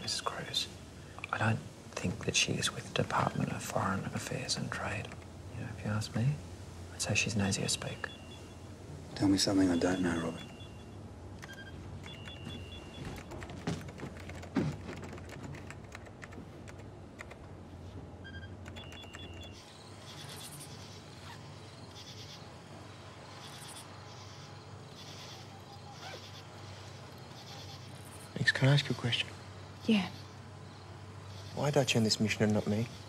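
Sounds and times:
steady low hum: 0.0s - 33.0s
faint high chirps: 7.4s - 13.3s, 18.2s - 31.6s
short electronic beeps: 8.0s - 8.6s, 9.6s - 13.2s, 18.2s - 19.6s
clicks like typing on keys: 11.4s - 17.4s, 18.6s - 19.6s.

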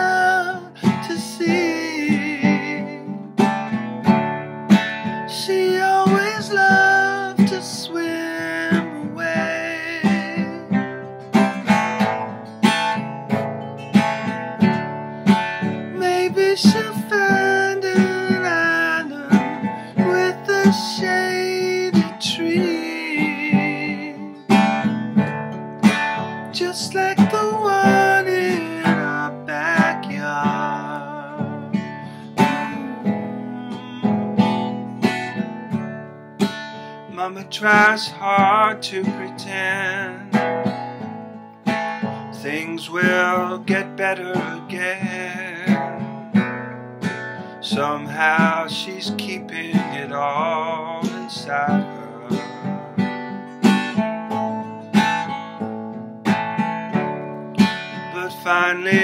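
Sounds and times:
man singing: 0.0s - 3.8s, 5.1s - 12.3s, 15.6s - 25.0s, 26.2s - 35.4s, 37.0s - 41.2s, 42.0s - 46.6s, 47.4s - 53.0s, 58.0s - 59.0s
acoustic guitar strumming: 0.0s - 59.0s.

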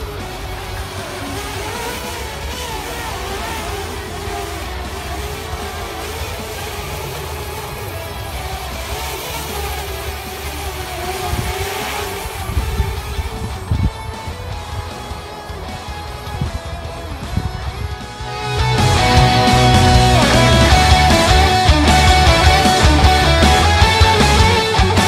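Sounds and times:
quadcopter propellers whining: 0.0s - 25.0s
wind rumble on microphone: 11.2s - 14.5s.

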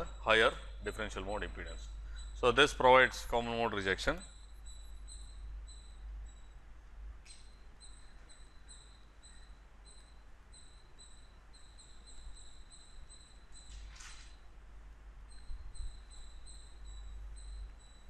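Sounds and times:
high-pitched electronic whine: 0.0s - 14.6s, 15.2s - 18.0s
low hum and hiss: 0.0s - 18.0s.

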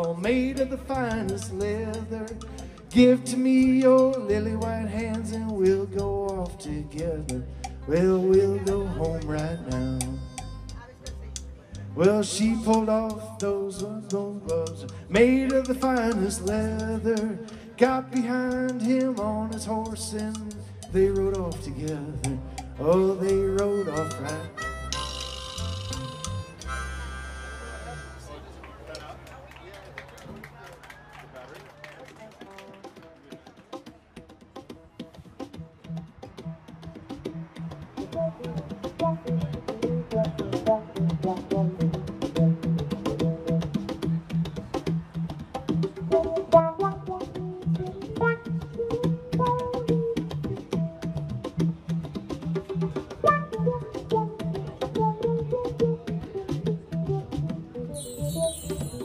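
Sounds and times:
conga drum strokes: 0.0s - 28.2s, 32.4s - 59.0s
repeating bass line: 19.2s - 27.1s.

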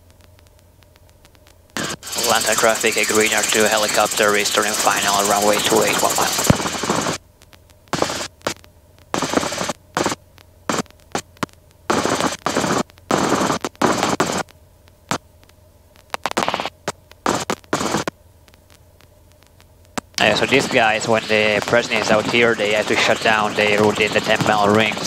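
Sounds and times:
faint steady hum: 0.0s - 25.0s
intercom static bursts: 1.8s - 7.2s, 7.9s - 14.4s, 16.2s - 18.1s, 20.0s - 25.0s.

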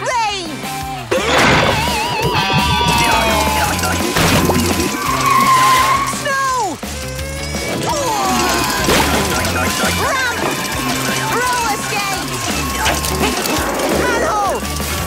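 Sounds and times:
cartoon background music: 0.0s - 15.0s
warbling tone: 2.2s - 6.0s.

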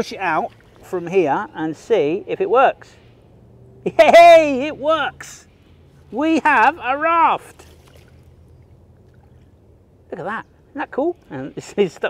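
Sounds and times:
faint water movement: 0.0s - 12.0s
low background rumble: 0.0s - 12.0s.

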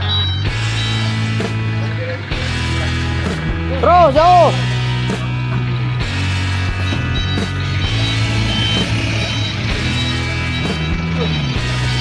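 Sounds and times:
diesel truck engine running: 4.6s - 12.0s
high-pitched reversing beeps: 6.7s - 12.0s.

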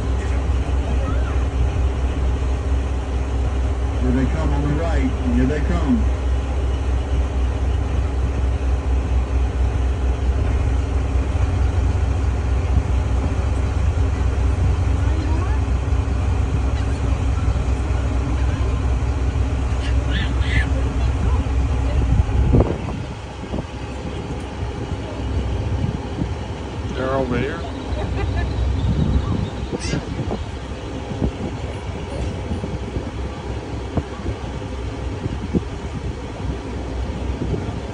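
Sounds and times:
boat engine droning: 0.0s - 37.9s.

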